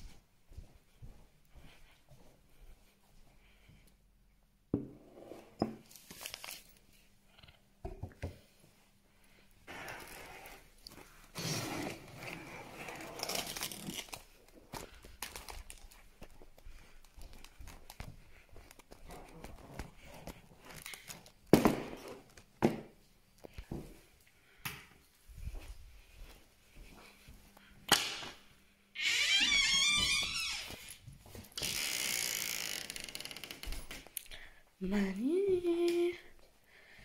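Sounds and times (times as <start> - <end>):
plastic wrapping crinkling: 5.9 - 6.8, 12.4 - 19.6, 20.6 - 21.6
door hinge creaking: 29.0 - 30.7.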